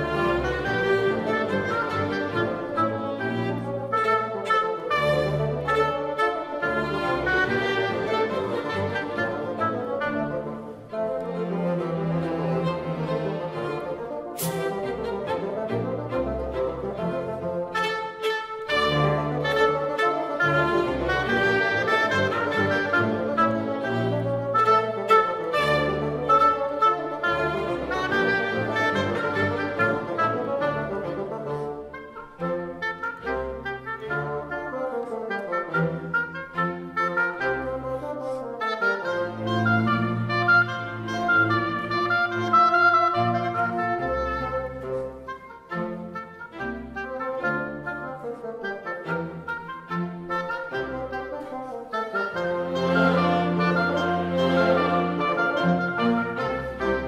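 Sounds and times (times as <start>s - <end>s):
oboe and bassoon with orchestra: 0.0s - 57.0s.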